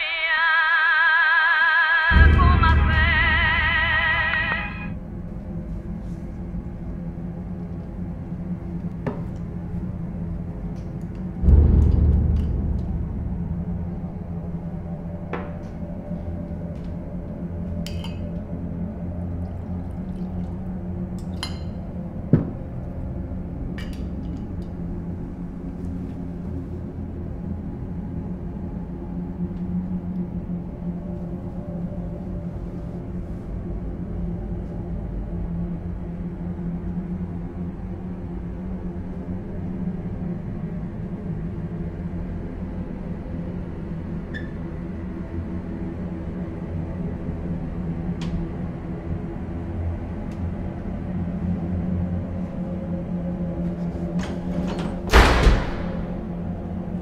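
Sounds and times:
singing from a radio: 0:00.0 - 0:05.0
background music drone: 0:00.0 - 0:57.0
deep thud: 0:11.4 - 0:15.6.

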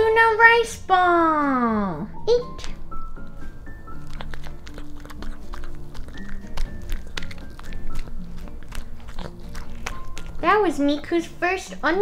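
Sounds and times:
background music: 0:00.0 - 0:12.0
pet chewing food: 0:02.4 - 0:12.0.

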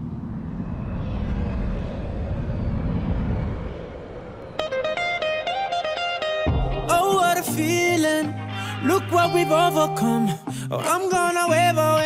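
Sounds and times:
low rumbling noise: 0:00.0 - 0:05.9
plucked guitar riff: 0:04.7 - 0:12.0
bass guitar: 0:06.3 - 0:10.9.

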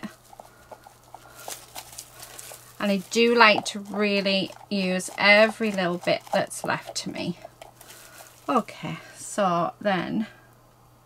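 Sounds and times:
stir stick scraping mixing cup: 0:00.0 - 0:08.8.

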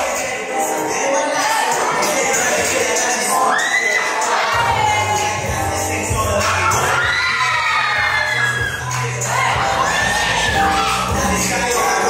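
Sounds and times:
dance music: 0:00.0 - 0:12.0
crowd cheering and shouting: 0:01.4 - 0:12.0
high rising whoop: 0:03.3 - 0:05.4, 0:06.4 - 0:11.5
deep bass beat: 0:04.6 - 0:12.0.

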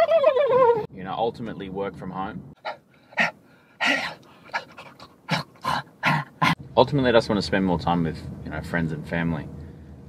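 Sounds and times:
man panting: 0:02.6 - 0:06.6.

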